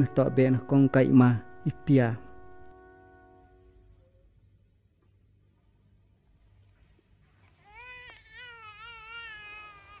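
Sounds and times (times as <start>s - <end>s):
newborn baby crying: 7.5s - 10.0s.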